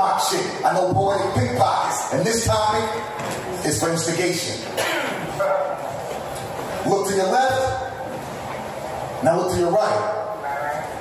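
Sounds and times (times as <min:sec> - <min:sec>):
man speaking: 0:00.0 - 0:05.9, 0:06.8 - 0:08.0, 0:09.2 - 0:11.0.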